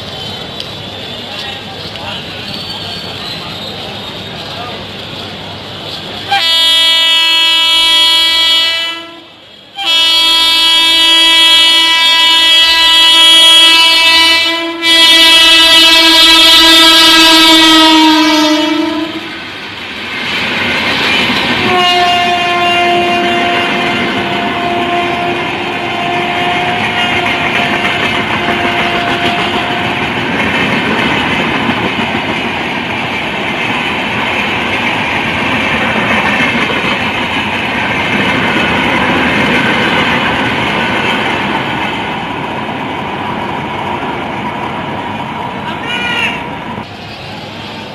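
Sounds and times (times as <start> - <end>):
train wheels clattering on rails: 0.0 - 6.7, 19.2 - 47.9
train horn blast: 6.3 - 19.4, 21.6 - 30.1.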